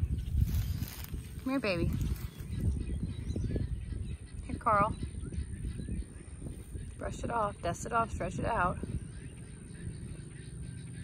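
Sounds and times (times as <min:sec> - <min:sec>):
faint bird chirps: 0:00.0 - 0:11.0
low steady rumble: 0:00.0 - 0:11.0.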